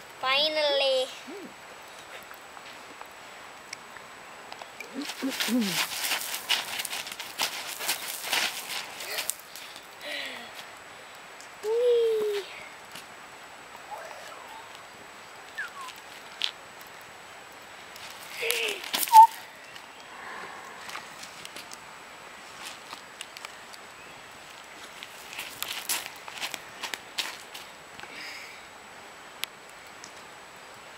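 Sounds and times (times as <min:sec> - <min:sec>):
child vocal sounds: 0:04.9 - 0:05.8, 0:11.6 - 0:12.6
child's feet on gravel: 0:04.9 - 0:09.9, 0:18.0 - 0:19.4, 0:22.5 - 0:23.3, 0:24.5 - 0:27.7.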